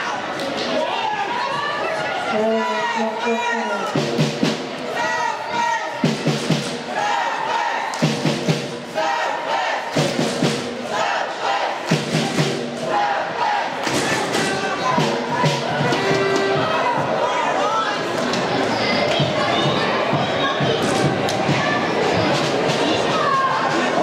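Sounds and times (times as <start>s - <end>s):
spectators chanting: 6.6s - 24.0s.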